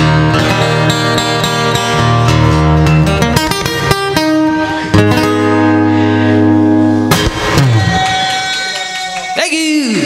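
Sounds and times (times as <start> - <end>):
acoustic guitar chords: 0.0 - 9.5.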